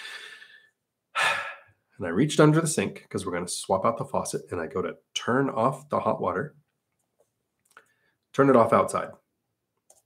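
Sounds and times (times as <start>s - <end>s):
quick intake of breath: 0.0s - 0.6s.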